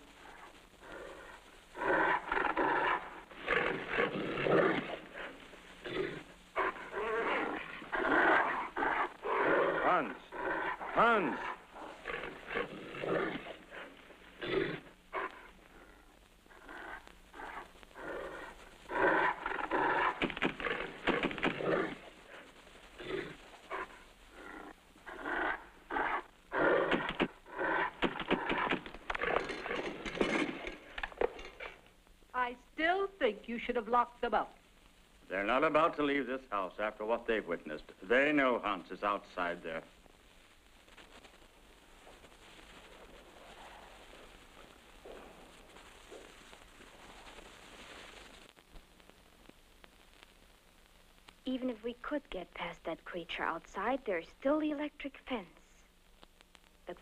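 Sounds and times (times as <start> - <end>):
creature growling and barking: 0.8 - 15.9, 16.6 - 22.4.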